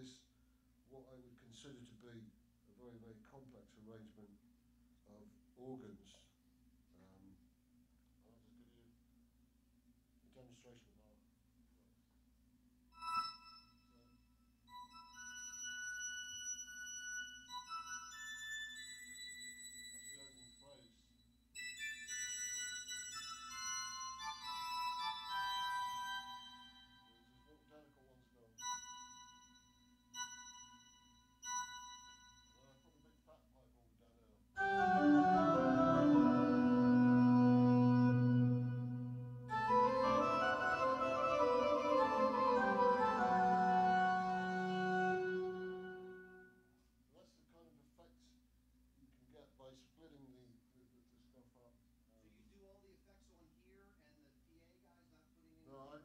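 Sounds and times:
church organ chords: 23.1 - 27.1, 34.6 - 46.5
synthesizer harp-like notes: 34.6 - 46.4.

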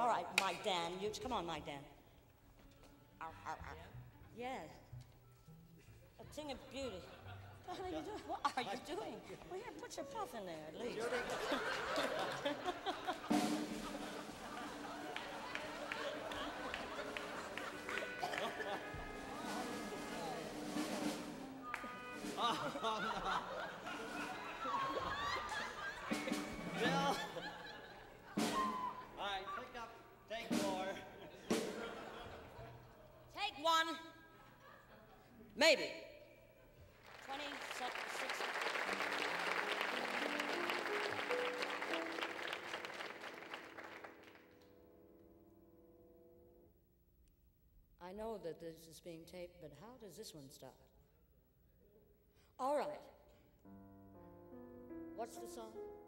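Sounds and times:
audience applauding: 11.0 - 27.7, 36.9 - 44.6
band playing rising phrase: 13.0 - 29.2, 30.5 - 32.2, 38.5 - 44.5
sustained musical tones: 13.2 - 29.2
held chord: 13.3 - 27.6, 39.0 - 46.6.

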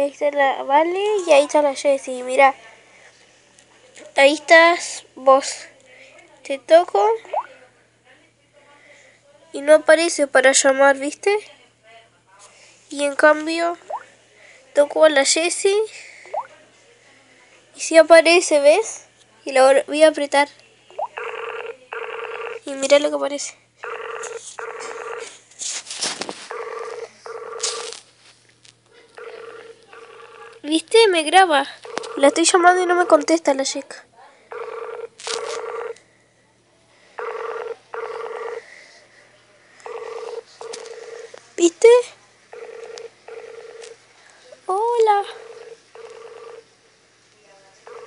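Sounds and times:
outgoing call tone beeps: 23.8 - 25.3, 29.2 - 30.6, 31.8 - 33.4, 34.5 - 36.0, 37.2 - 38.6.

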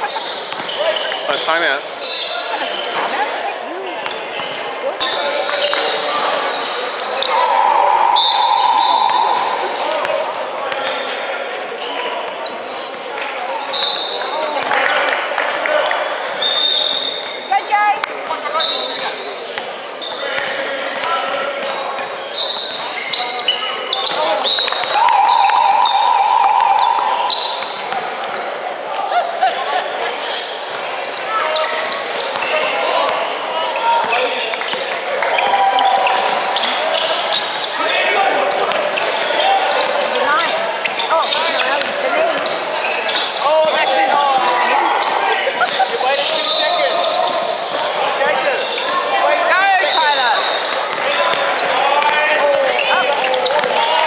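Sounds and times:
sneakers squeaking: 0.0 - 14.9, 15.8 - 54.0
people calling out: 5.0 - 10.6, 23.2 - 27.6, 35.2 - 54.0.

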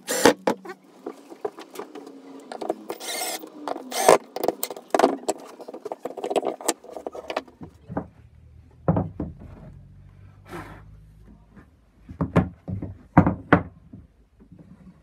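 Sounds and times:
cordless drill driving screws: 0.0 - 0.4, 2.9 - 4.6.

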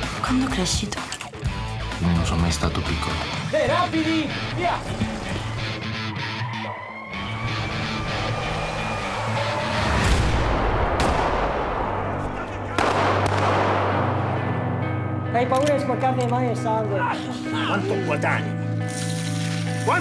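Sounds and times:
rising and falling tone: 5.0 - 11.0
pistol shot: 10.9 - 12.1, 12.7 - 14.6.

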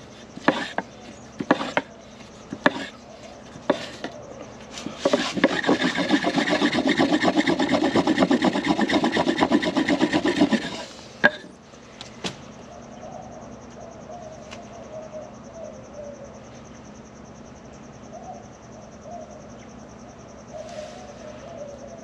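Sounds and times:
wooden block rubbing on plank: 0.3 - 1.9, 2.5 - 3.0, 3.6 - 4.1, 4.8 - 11.4.

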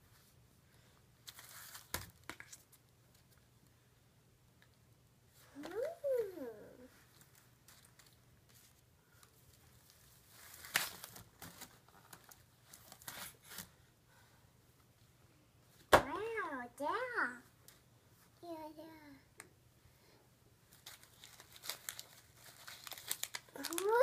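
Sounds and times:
packaging rustling and crinkling: 7.1 - 13.8, 20.7 - 24.0.

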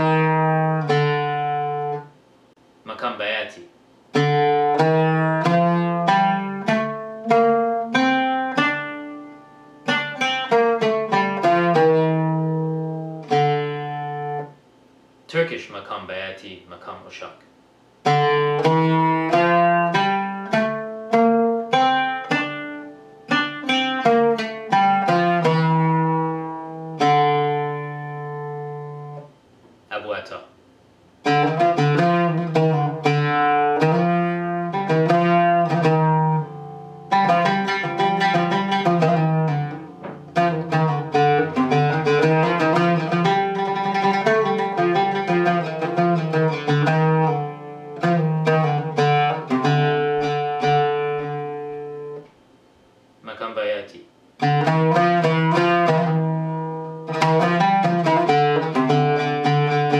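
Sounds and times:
oud tremolo picking: 0.0 - 2.1, 4.1 - 14.6, 18.0 - 29.3, 31.2 - 52.3, 54.4 - 59.9
oud picked with a plectrum: 0.0 - 2.2, 4.1 - 14.6, 18.0 - 29.4, 31.2 - 52.4, 54.4 - 59.9.

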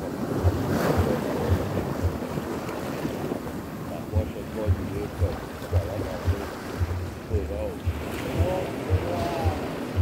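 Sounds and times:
wave splashing close by: 0.0 - 10.0
waves breaking on beach: 0.0 - 10.0
wind thumping on microphone: 0.0 - 10.0.

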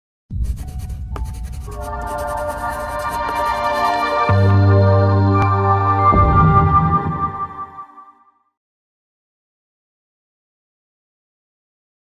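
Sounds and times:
pencil scratching on paper: 0.4 - 4.3.

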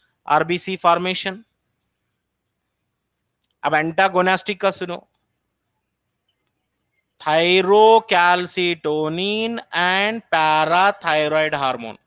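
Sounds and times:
faint short squeak: 6.2 - 7.2.

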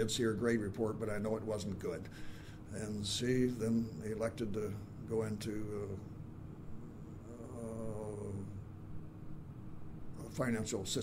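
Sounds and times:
man saying uhhh: 7.2 - 8.6.

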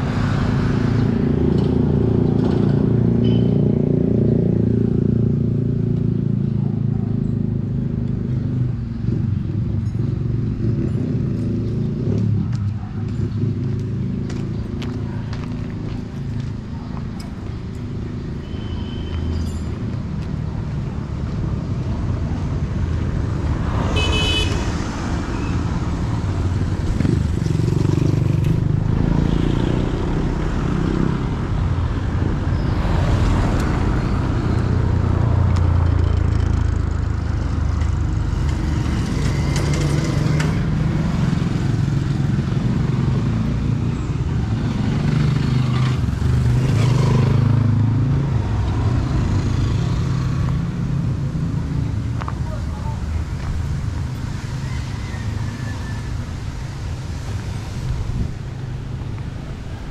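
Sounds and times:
traffic rumble: 0.0 - 59.9.

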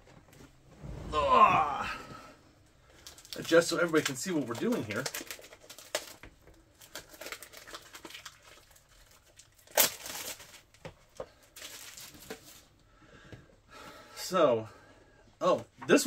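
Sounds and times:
plastic wrapping crinkling and tearing: 2.8 - 12.8.

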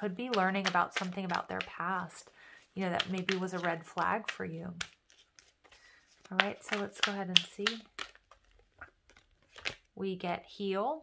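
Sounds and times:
cards clicking and rustling: 0.1 - 9.9
card snapping: 3.0 - 9.8.

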